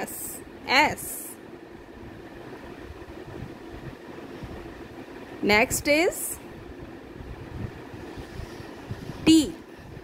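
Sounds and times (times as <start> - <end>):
room noise hum and hiss: 0.0 - 10.0.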